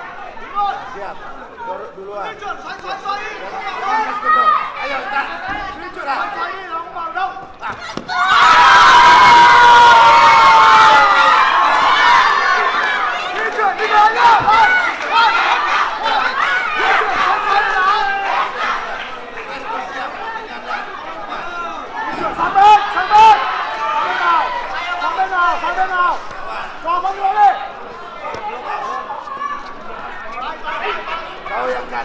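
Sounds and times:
crowd cheering and shouting: 0:07.6 - 0:32.0.

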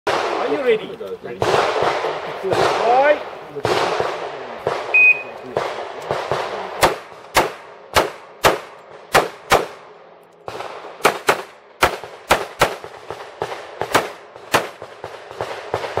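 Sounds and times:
pistol shots: 0:00.1 - 0:16.0
shot timer beep: 0:05.0 - 0:05.3.

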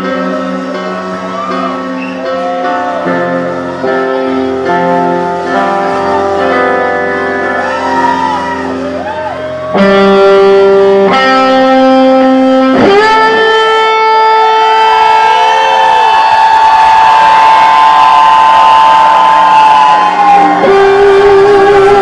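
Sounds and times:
distorted electric guitar: 0:00.0 - 0:22.0
rock band playing loud: 0:00.0 - 0:22.0.

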